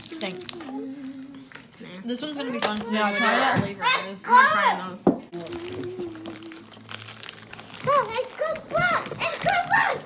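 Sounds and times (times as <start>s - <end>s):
plastic packaging crinkling: 0.0s - 3.0s, 5.4s - 10.0s.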